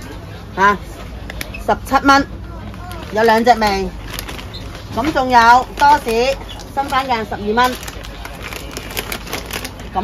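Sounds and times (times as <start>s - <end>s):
plastic snack packets crinkling: 2.6s - 10.0s.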